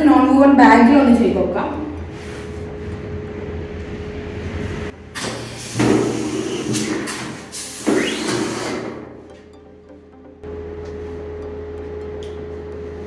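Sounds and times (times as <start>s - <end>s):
pneumatic machine air hissing: 5.2s - 9.0s.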